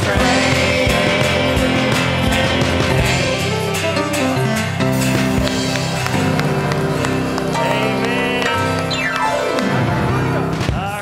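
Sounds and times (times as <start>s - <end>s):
person singing: 0.0s - 11.0s
worship band music: 0.0s - 11.0s
hand claps or drum hits: 4.8s - 10.0s.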